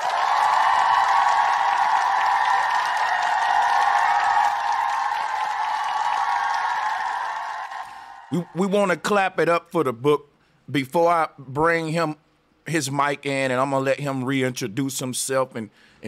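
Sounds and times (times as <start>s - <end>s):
crowd applause and cheering: 0.0s - 9.0s.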